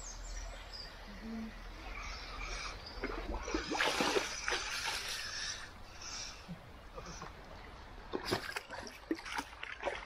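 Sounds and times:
water splashing in a stream: 1.8 - 6.0, 6.6 - 10.0.

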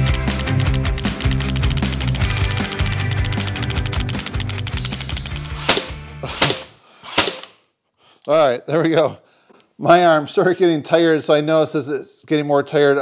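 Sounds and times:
heavy rock music: 0.0 - 6.7
nail gun shots: 5.4 - 7.6.

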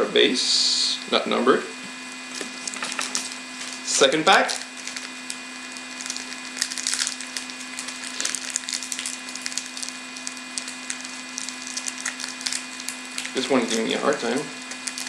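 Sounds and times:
wrapper crinkling and crackling: 2.3 - 15.0
wrapper tearing: 2.3 - 15.0.

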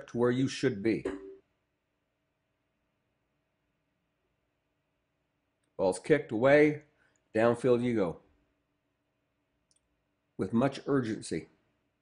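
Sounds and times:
man narrating: 0.0 - 1.2, 5.8 - 8.2, 10.4 - 11.6.

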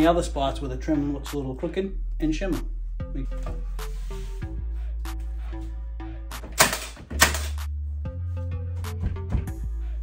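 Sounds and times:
background music: 0.0 - 10.0
nail gun shots: 6.6 - 7.6.

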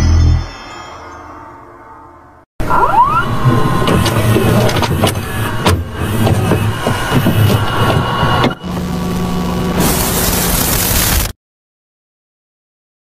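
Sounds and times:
low hum: 0.0 - 11.2
buzzing crackling tape noise: 8.4 - 11.3
loud static hiss: 8.8 - 11.4.

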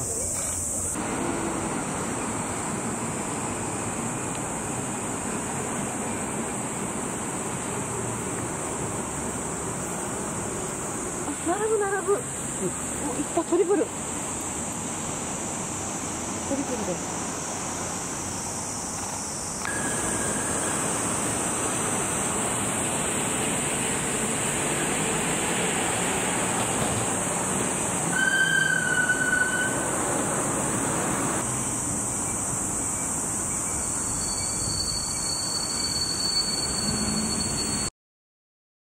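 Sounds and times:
shrill high band: 19.7 - 22.5, 28.1 - 30.3, 33.8 - 37.9
whistled bird calls: 28.1 - 29.9, 33.7 - 37.8.

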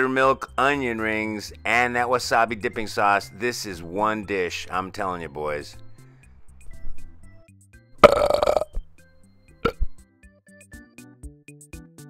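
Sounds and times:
quiet background music: 0.0 - 11.1
loud belch: 8.0 - 8.8, 9.6 - 10.0.

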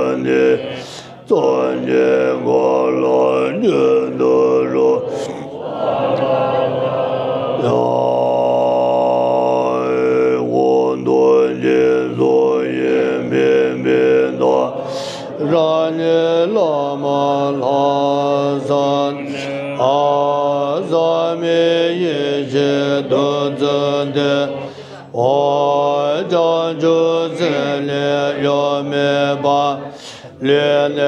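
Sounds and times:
group chanting a prayer in unison: 0.0 - 31.0.

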